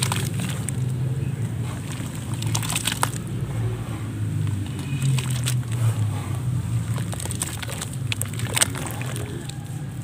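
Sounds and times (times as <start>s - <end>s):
hands squelching wet mud: 0.0s - 10.0s.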